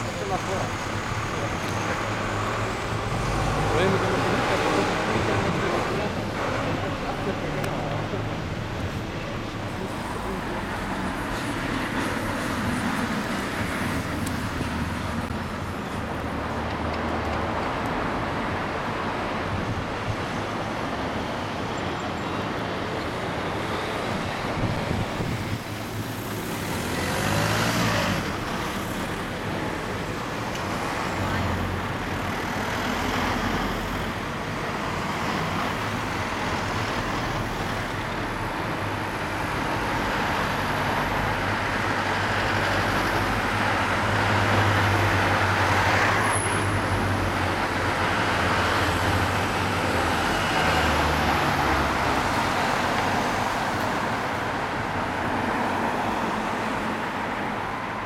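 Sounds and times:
passing vehicles: 0.0 - 58.0.

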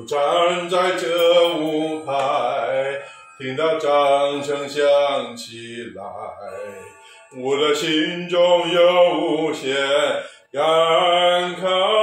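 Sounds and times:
man singing a slow ballad: 0.0 - 12.0.

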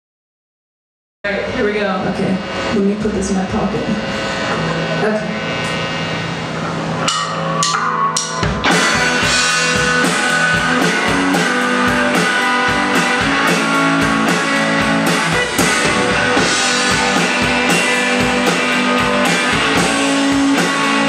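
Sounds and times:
drum kit beat: 1.3 - 21.0
electric guitar: 1.3 - 21.0.

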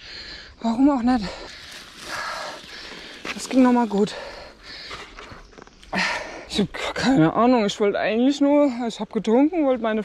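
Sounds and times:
bike rolling on paved path: 0.9 - 5.8.

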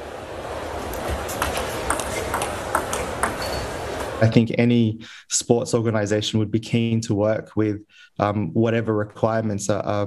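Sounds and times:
background hiss: 0.0 - 10.0
table tennis ball clicking: 0.9 - 3.7.

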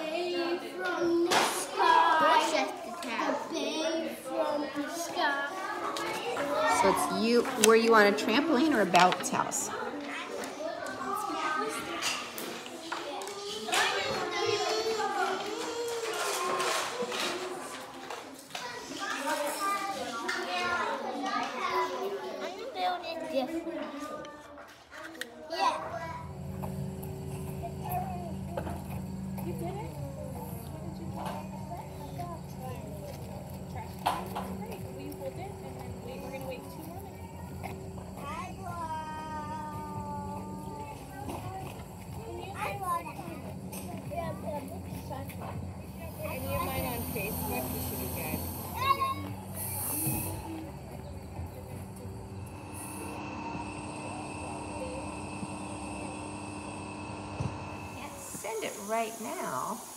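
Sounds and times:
children's voices: 0.0 - 59.9
steady low hum: 25.8 - 59.9.

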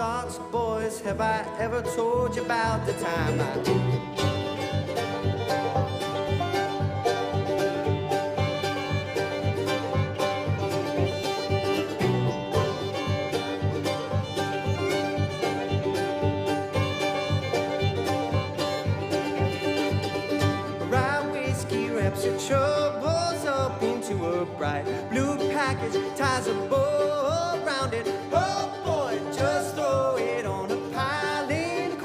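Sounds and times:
banjo picking: 0.0 - 32.0
bluegrass string band playing: 0.0 - 32.0
fiddle: 0.0 - 32.0.

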